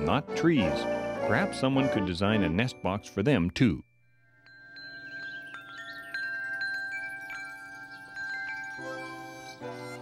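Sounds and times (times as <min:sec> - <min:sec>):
metal wind chimes ringing: 0:02.5 - 0:10.0.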